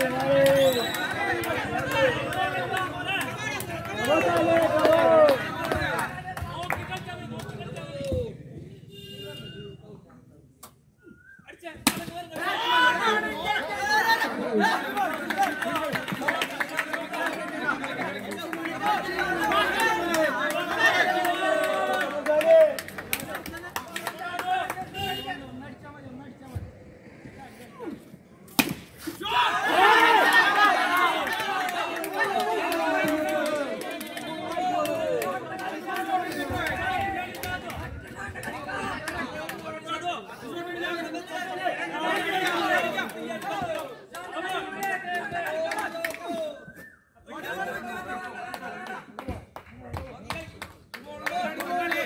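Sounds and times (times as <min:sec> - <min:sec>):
voices talking and calling out: 0:00.0 - 0:52.0.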